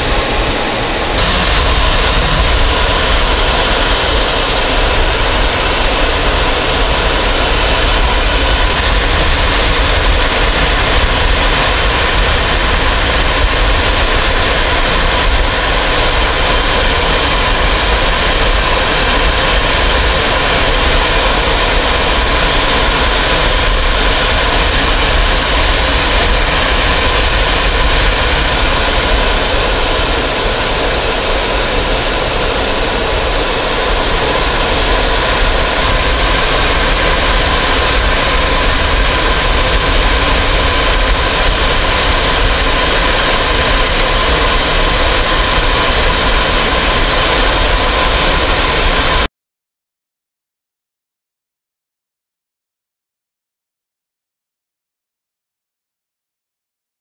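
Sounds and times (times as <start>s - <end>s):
aircraft engine drone: 0.0s - 49.3s.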